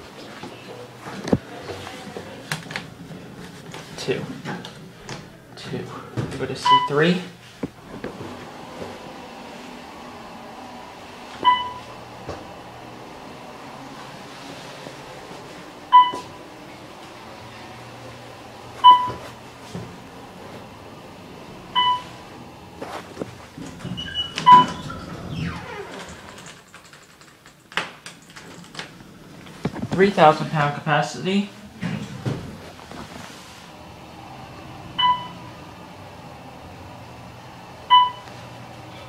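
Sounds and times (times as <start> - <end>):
elevator low hum: 0.0 - 39.0
elevator doors sliding open: 1.0 - 26.8, 28.1 - 30.7, 31.6 - 39.0.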